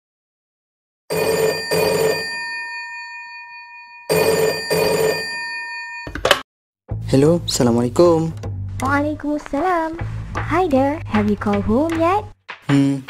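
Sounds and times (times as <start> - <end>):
telephone bell ringing: 1.1 - 6.3.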